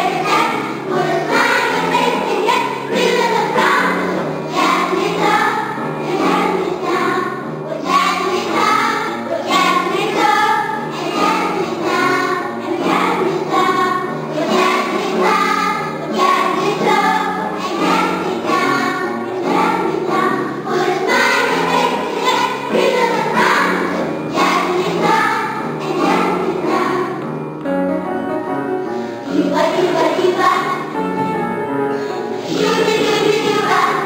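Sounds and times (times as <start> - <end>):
children's choir singing: 0.0 - 27.4, 28.9 - 31.3, 32.0 - 34.0.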